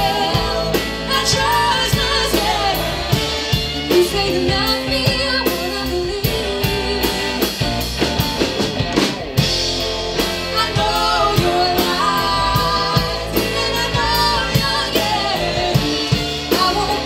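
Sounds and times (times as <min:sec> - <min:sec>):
woman singing: 0:00.0 - 0:07.5, 0:10.5 - 0:17.0
rock band playing: 0:00.0 - 0:17.0.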